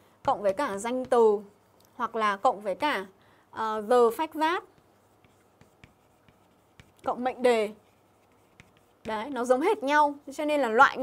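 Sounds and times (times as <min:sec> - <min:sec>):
chalk tapping on board: 0:00.2 - 0:01.6, 0:04.1 - 0:10.0
chalk scratching on chalkboard: 0:00.2 - 0:02.8, 0:03.6 - 0:11.0.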